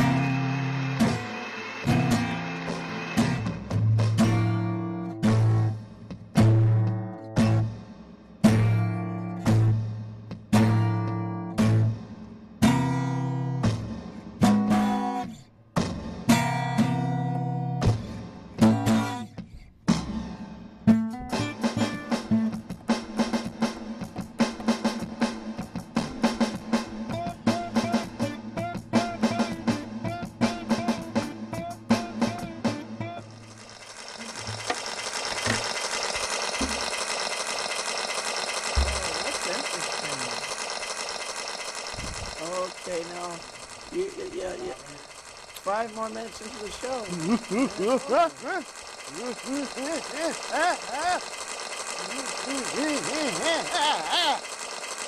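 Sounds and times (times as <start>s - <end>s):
acoustic guitar: 0.0s - 7.8s, 14.4s - 15.4s, 16.2s - 19.4s.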